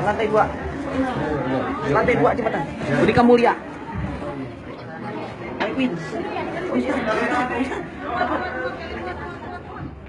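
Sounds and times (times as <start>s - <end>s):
overlapping crowd chatter: 0.0s - 10.0s.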